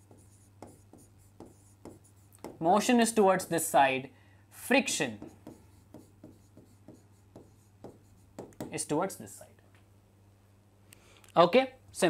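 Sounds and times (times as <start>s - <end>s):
low steady hum: 0.0s - 12.0s
stylus tapping on screen: 0.1s - 2.6s, 5.2s - 8.8s.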